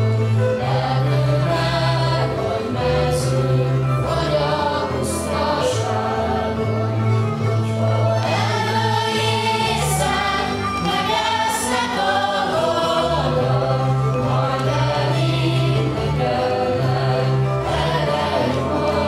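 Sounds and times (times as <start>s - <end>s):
group of voices singing: 0.0s - 19.0s
instrumental accompaniment with bass: 0.0s - 19.0s.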